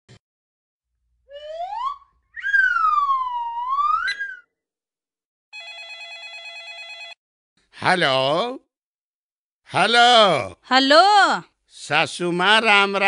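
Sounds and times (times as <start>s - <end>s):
swooping whistle effect: 1.3s - 4.6s
electronic telephone ring: 5.6s - 7.2s.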